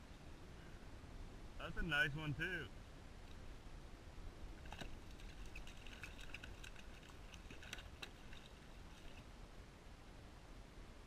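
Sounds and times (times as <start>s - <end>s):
fish splashing in water: 4.6s - 9.3s.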